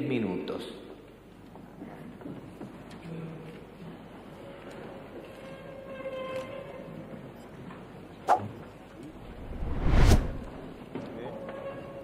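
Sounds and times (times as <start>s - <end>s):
people moving about a room: 0.9s - 9.2s, 10.6s - 12.0s.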